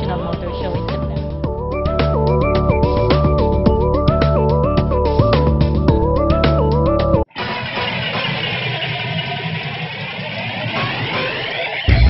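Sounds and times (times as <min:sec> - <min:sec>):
high whine: 0:00.8 - 0:12.0
engine-like rushing sound effect: 0:07.3 - 0:12.0.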